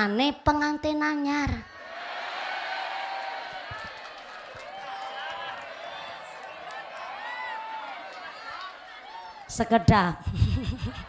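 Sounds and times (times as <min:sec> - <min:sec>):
women laughing and chattering: 0:10.0 - 0:11.0.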